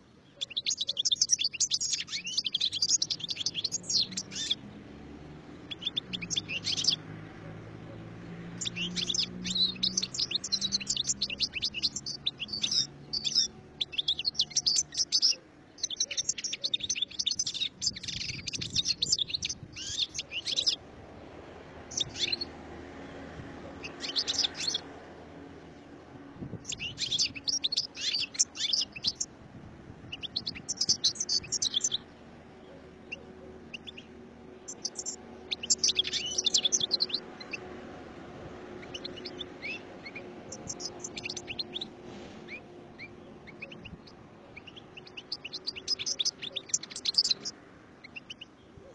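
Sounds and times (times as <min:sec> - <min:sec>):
goldfinch twittering song: 0:00.0 - 0:20.8, 0:21.8 - 0:22.6, 0:23.2 - 0:24.9, 0:26.5 - 0:29.3, 0:30.1 - 0:37.9, 0:38.5 - 0:48.9.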